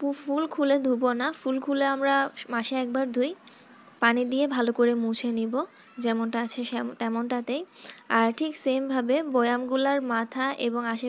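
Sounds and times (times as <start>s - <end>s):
woman speaking: 0.0s - 3.4s, 4.0s - 11.0s.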